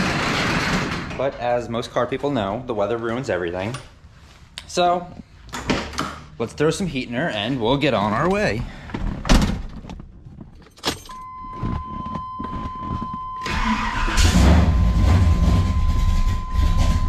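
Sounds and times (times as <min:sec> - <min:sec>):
car engine rumbling: 0:09.7 - 0:17.0
dashboard warning tone: 0:11.1 - 0:17.0.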